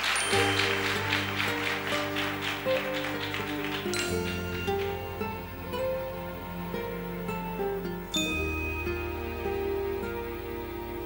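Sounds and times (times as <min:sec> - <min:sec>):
steady tapping beat: 0:00.0 - 0:07.5
band playing with guitar: 0:00.0 - 0:11.0.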